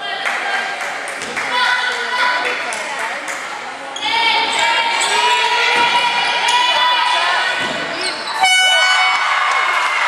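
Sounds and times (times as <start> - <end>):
voices echoing in gym: 0.0 - 10.0.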